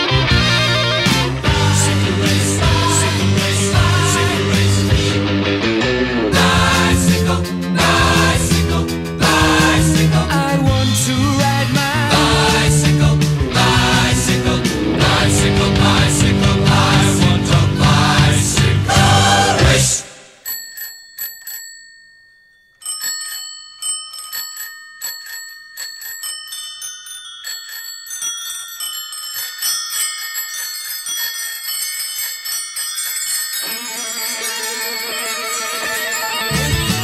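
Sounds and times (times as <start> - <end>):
guitar music: 0.0 - 19.9, 35.1 - 37.0
rock music with heavy bass: 0.0 - 20.0, 36.5 - 37.0
bicycle bells ringing: 20.2 - 37.0.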